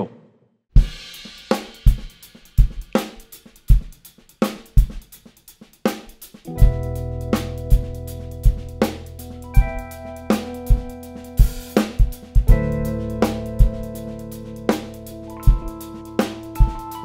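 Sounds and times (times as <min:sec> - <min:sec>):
drum kit playing a groove: 0:00.8 - 0:17.0
sustained keyboard chords: 0:06.5 - 0:17.0.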